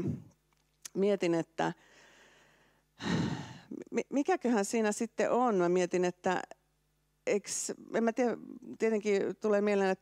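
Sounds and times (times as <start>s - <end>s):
woman breathing: 1.8s - 3.8s.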